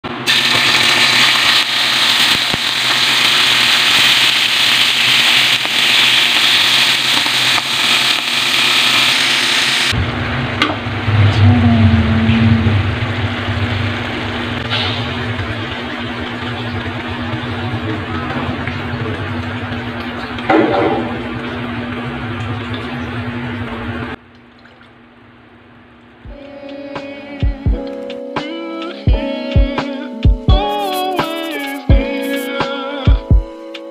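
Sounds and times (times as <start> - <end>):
food sizzling in a wok: 0.1 - 21.9, 30.6 - 32.6
low steady hum: 9.9 - 26.8.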